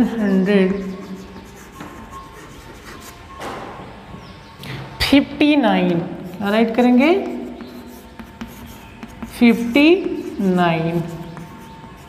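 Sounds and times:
chalk scratching on chalkboard: 0.1s - 3.3s, 6.2s - 12.0s.

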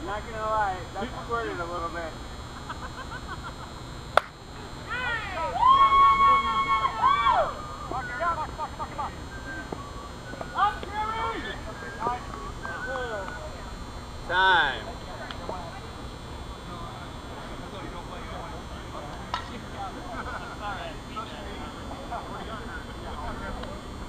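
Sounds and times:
bat hitting ball: 4.2s - 4.4s
players shouting: 4.9s - 8.6s.

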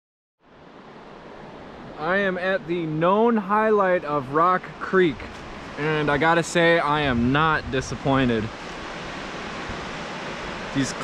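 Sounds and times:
creek water and small waterfall: 0.5s - 11.0s.

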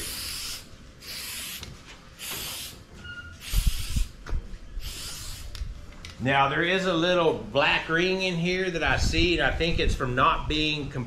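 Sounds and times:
aerosol can spraying hiss: 0.0s - 2.8s, 3.4s - 4.2s, 4.8s - 5.6s
wind rumble on microphone: 8.7s - 11.0s.

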